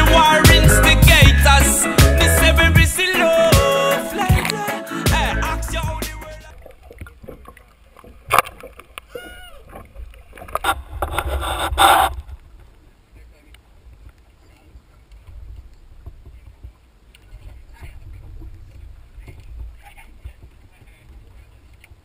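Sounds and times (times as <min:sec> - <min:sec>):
wind and water rumble: 0:06.4 - 0:22.0.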